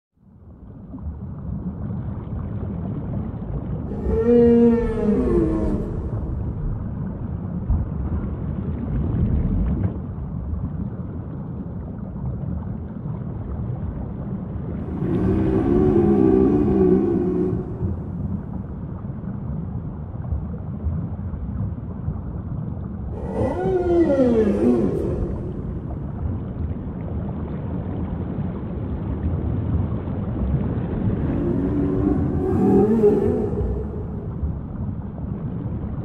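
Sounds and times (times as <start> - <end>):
low underwater rumble: 0.2 - 36.0
whale calls: 3.8 - 7.2, 14.7 - 18.8, 23.1 - 26.6, 31.0 - 35.9.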